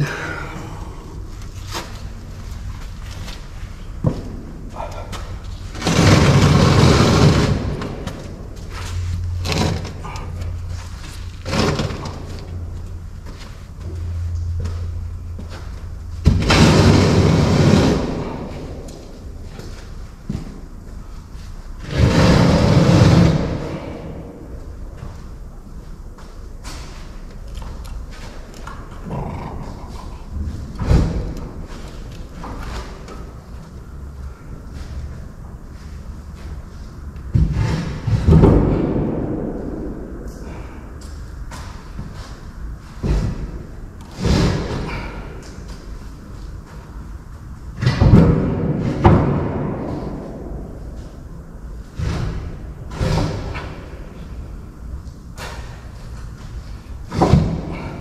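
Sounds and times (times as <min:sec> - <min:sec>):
low hum: 0:00.0 - 0:58.0
knocks and clanks: 0:02.8 - 0:25.4, 0:37.2 - 0:47.1, 0:47.7 - 0:54.6, 0:55.3 - 0:58.0
loud rumbling rushes: 0:04.4 - 0:13.1, 0:14.0 - 0:20.1, 0:21.4 - 0:25.0.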